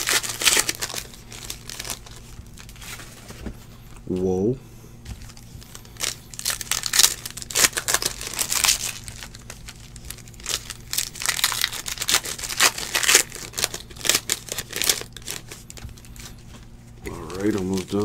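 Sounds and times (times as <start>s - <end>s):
foil wrapper crinkling and tearing: 0.0s - 3.2s, 5.1s - 18.0s.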